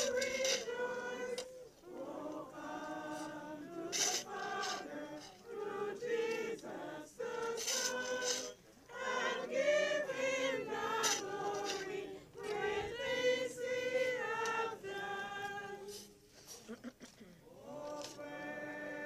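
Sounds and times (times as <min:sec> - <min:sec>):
choir singing a hymn: 0:00.0 - 0:16.5, 0:17.4 - 0:19.0.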